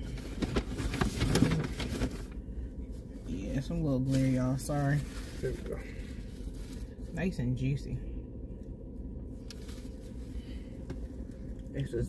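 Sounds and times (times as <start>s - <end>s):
paper wrapper crinkling: 0.0s - 2.4s
steady low rumble: 0.0s - 12.0s.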